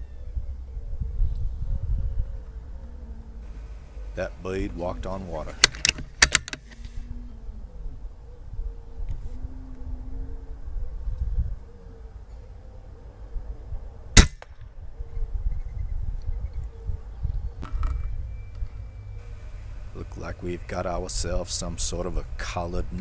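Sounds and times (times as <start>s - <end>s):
steady low rumble: 13.4s - 23.0s
air rifle shot: 14.2s - 14.6s.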